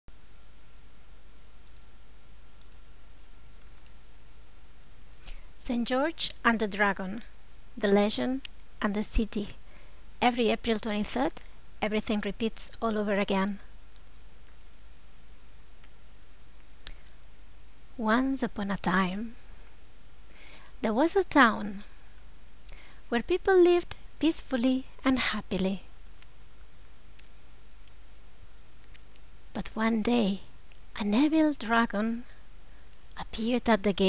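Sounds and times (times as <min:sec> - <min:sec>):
low steady hum: 0:00.0 - 0:34.0
background hiss: 0:00.1 - 0:34.0
faint clicks: 0:01.6 - 0:01.9, 0:02.6 - 0:02.9, 0:16.6 - 0:17.2, 0:27.1 - 0:28.0, 0:28.8 - 0:29.5.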